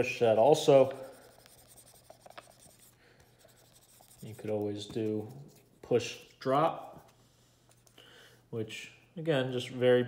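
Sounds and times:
marker rubbing on whiteboard: 0.0s - 5.8s.

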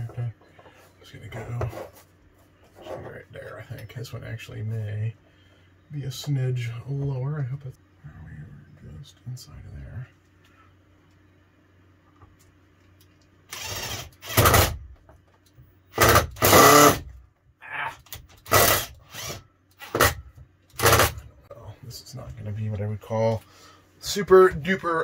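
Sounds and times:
cordless drill driving screw: 13.5s - 14.8s, 15.9s - 17.0s, 18.4s - 20.2s, 20.8s - 21.2s.

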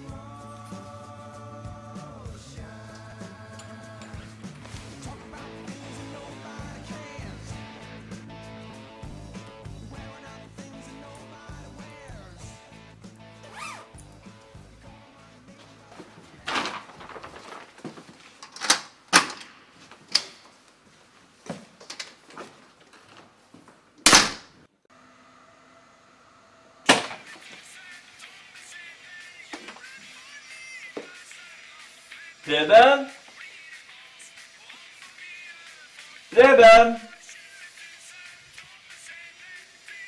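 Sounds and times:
music with steady bass line: 0.0s - 16.1s.

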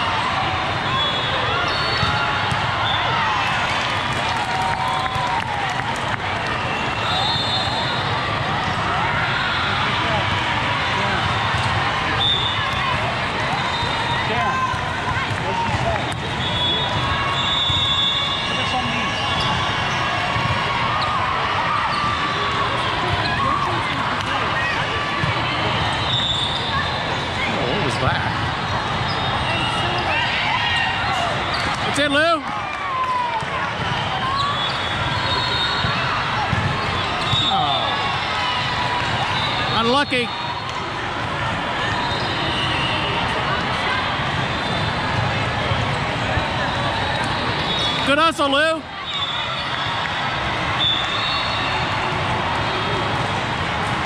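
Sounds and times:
many overlapping voices: 0.0s - 54.0s
volleyballs hit and bouncing: 10.0s - 13.6s, 14.3s - 17.9s, 31.1s - 35.2s, 35.8s - 37.9s.

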